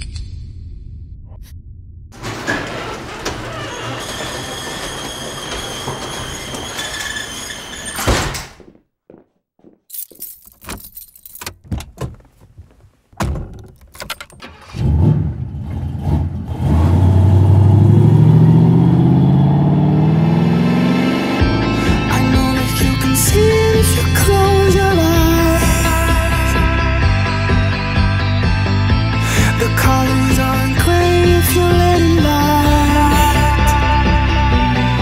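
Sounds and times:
low rising tone: 0:17.0 - 0:22.1.

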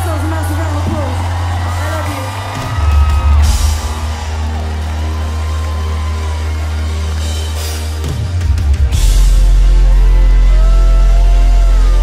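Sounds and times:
live pop concert music: 0:00.0 - 0:12.0
sustained bass: 0:02.3 - 0:12.0.

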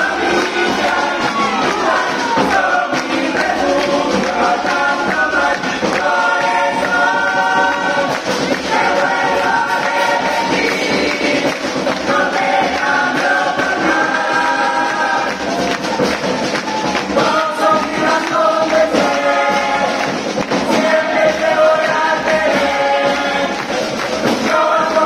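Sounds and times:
choir singing in close harmony: 0:00.0 - 0:25.0.

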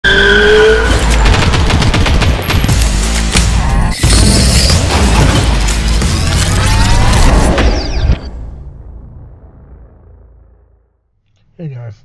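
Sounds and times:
heavy low rumble: 0:08.2 - 0:11.1.

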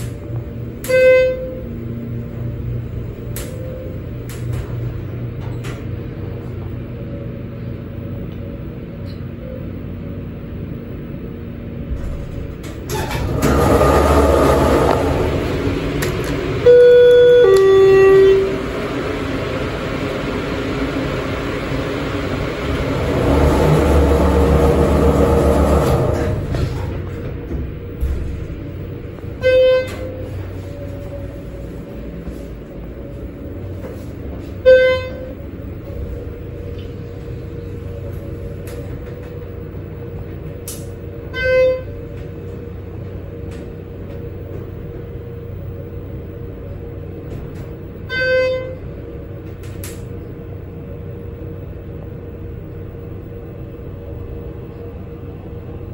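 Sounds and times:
elevator humming: 0:00.0 - 0:55.9
elevator two-tone chime: 0:16.6 - 0:18.6.

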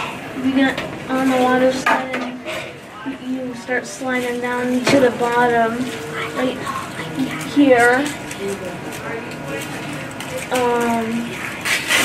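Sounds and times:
children chattering: 0:02.9 - 0:11.6.

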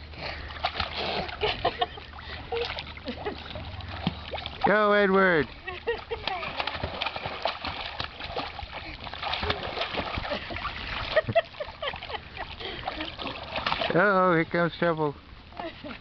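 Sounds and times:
water splashing in a pool: 0:00.0 - 0:16.0.

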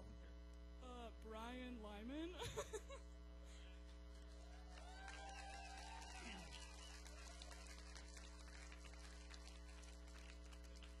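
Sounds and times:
electrical mains hum: 0:00.0 - 0:11.0
faint clicks and crackle: 0:07.2 - 0:11.0.

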